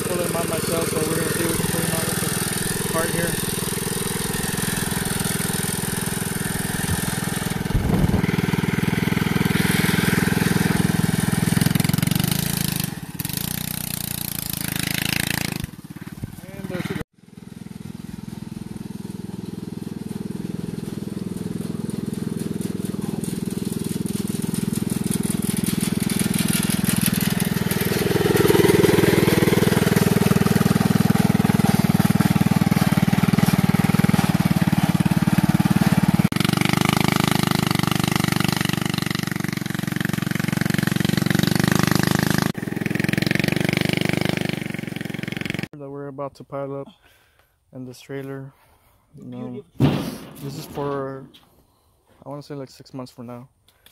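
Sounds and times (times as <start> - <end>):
go-kart engine running: 0.0 - 45.7.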